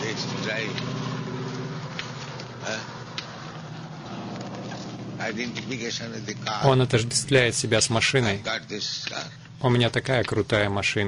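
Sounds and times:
car engine running: 0.0s - 11.0s
voices talking: 0.0s - 11.0s.

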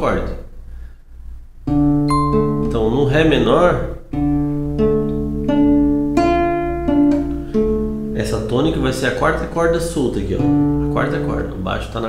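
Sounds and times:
acoustic guitar fingerpicking: 1.7s - 2.9s, 4.1s - 8.5s, 10.4s - 11.6s.

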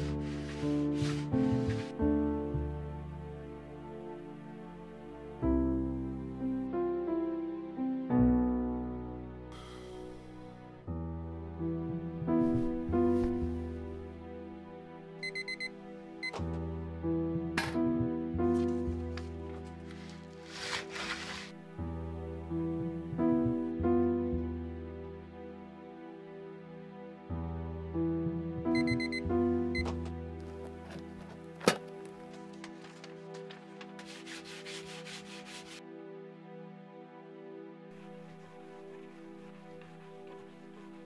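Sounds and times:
soft background music: 0.0s - 41.0s
alarm clock beeping: 15.2s - 16.4s, 28.8s - 29.9s
hand sanding wooden plank: 34.0s - 35.8s.

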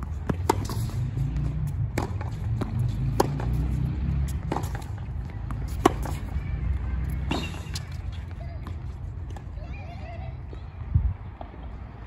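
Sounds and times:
tennis ball hitting racket: 0.0s - 8.7s.

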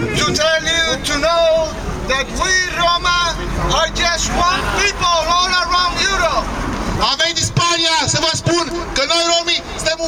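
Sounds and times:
man speaking through a loudspeaker: 0.0s - 10.0s
road traffic rumble: 0.0s - 10.0s.

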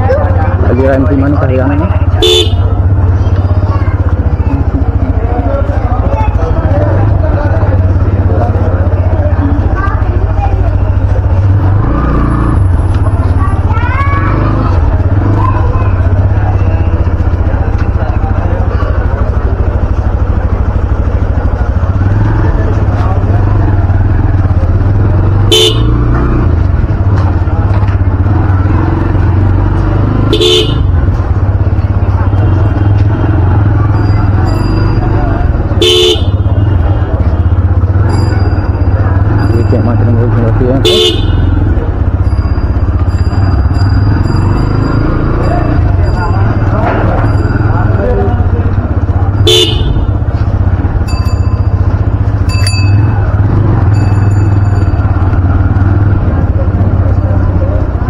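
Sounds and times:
motorcycle engine running: 0.0s - 58.0s
people talking: 0.0s - 58.0s
vehicle horn toots: 2.0s - 2.9s, 25.4s - 26.2s, 30.2s - 31.0s, 35.7s - 37.0s, 40.8s - 41.7s, 49.4s - 50.2s.

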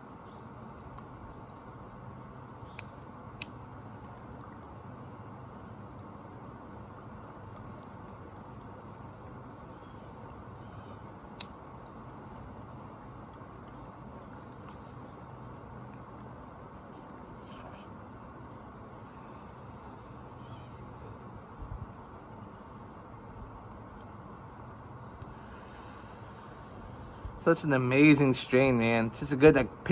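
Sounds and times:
low background hum: 0.0s - 29.9s
faint sharp clicks: 11.4s - 11.6s.

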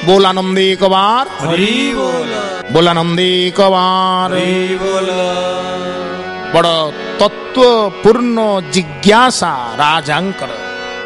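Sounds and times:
men chanting: 1.3s - 6.3s.

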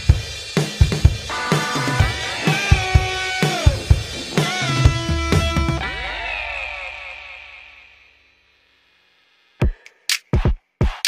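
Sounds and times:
film song final chord: 1.3s - 8.3s.

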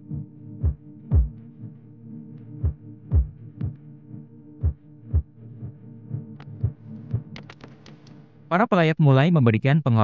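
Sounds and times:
deep drum beats: 0.6s - 1.4s, 2.6s - 3.8s.

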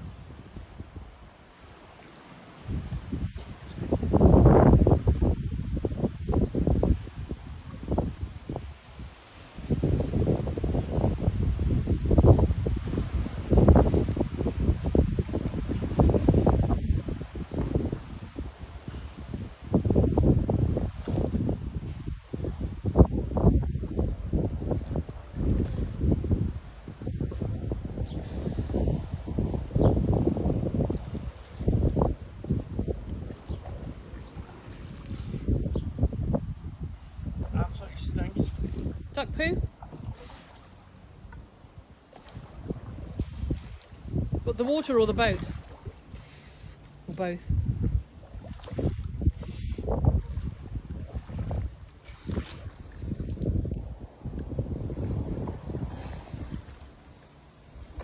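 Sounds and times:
wind buffeting microphone: 0.0s - 1.8s, 2.5s - 58.0s.

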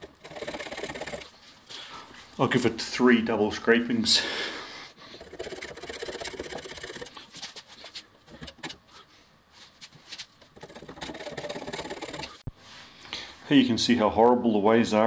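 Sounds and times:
hand scraper cutting cast iron: 10.5s - 12.4s.

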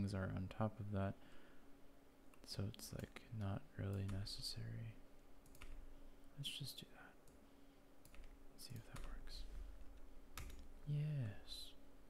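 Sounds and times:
computer keyboard keystrokes: 3.9s - 4.3s, 5.4s - 5.8s, 8.0s - 9.2s, 10.4s - 10.7s.

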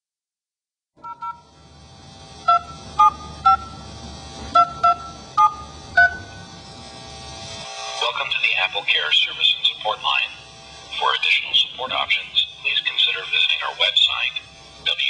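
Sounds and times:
telephone keypad beeps: 1.0s - 1.4s, 4.6s - 6.3s
steady line hiss: 6.4s - 15.0s.

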